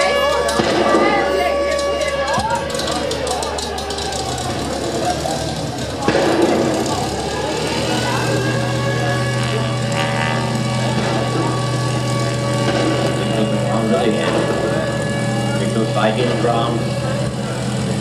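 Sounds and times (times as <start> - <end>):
crowd chatter: 0.0 - 18.0
low drone through speakers: 0.0 - 18.0.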